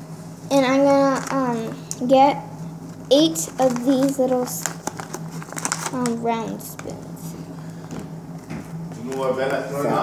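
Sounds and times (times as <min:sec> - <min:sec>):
steady low hum: 0:00.0 - 0:10.0
paper packet rustling: 0:03.2 - 0:06.9.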